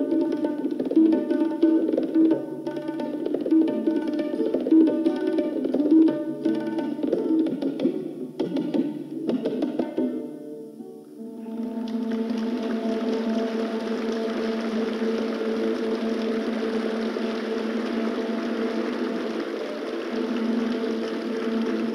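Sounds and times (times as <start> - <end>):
audience applauding: 11.4 - 21.9.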